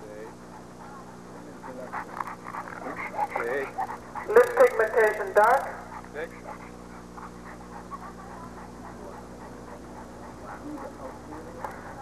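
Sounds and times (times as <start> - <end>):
dog panting softly: 0.0 - 12.0
steady low hum: 0.0 - 12.0.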